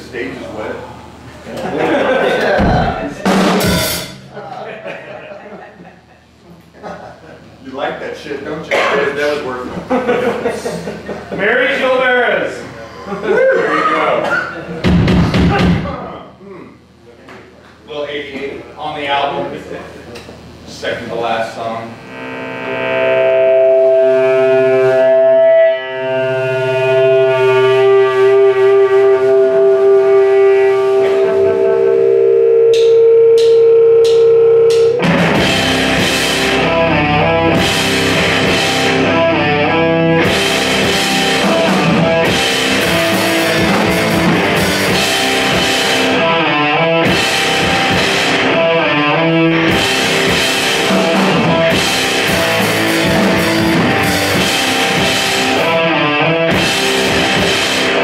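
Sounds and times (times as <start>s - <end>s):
drum kit: 2.2s - 5.0s, 14.3s - 16.2s, 23.2s - 58.0s
electric bass: 21.9s - 58.0s
distorted electric guitar: 22.0s - 58.0s.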